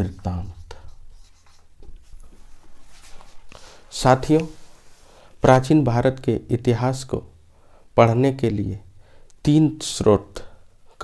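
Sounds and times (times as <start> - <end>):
marker pen writing on whiteboard: 0.0 - 2.6.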